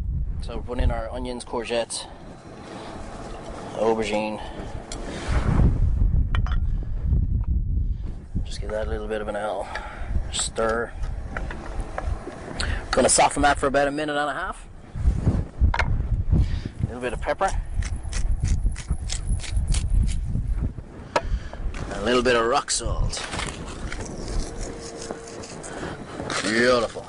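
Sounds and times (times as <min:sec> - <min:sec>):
wind rumble on microphone: 0:00.0 - 0:27.0.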